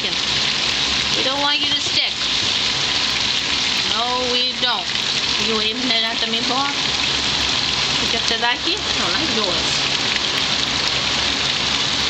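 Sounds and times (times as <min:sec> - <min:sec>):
meatballs sizzling in oil: 0:00.0 - 0:12.0.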